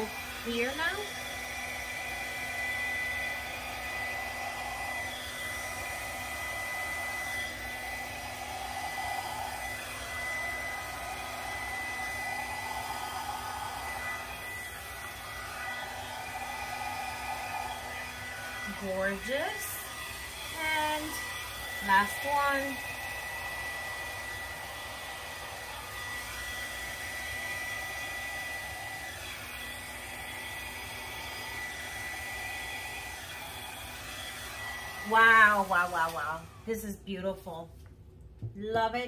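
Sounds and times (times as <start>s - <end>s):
blow dryer whining: 0.0s - 36.8s.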